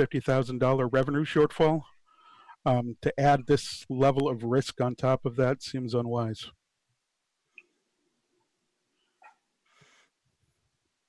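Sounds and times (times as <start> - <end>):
faint breath-like noise: 1.9 - 2.7.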